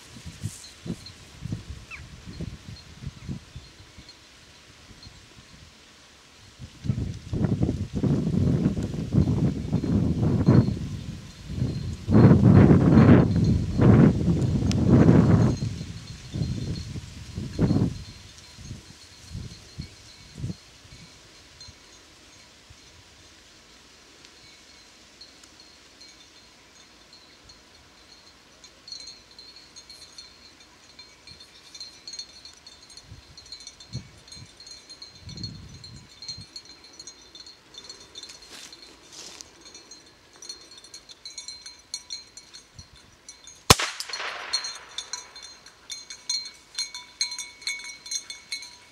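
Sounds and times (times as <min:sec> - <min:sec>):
faint high ringing: 0:24.4 - 0:48.9.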